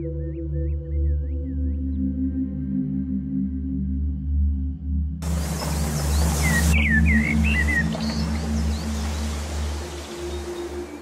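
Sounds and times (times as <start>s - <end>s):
ambient music with low drone: 0.0s - 11.0s
outdoor ambience hiss: 5.2s - 11.0s.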